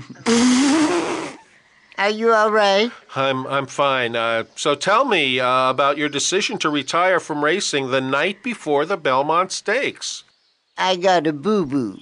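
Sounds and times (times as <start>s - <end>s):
man choking and sputtering: 0.0s - 1.4s.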